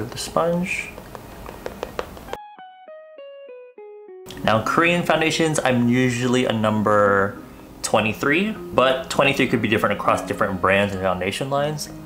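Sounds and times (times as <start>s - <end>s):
plucked string melody: 2.3s - 12.0s.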